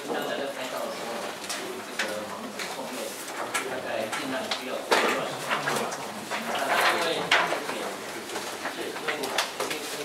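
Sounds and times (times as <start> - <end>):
people talking indistinctly: 0.0 - 10.0.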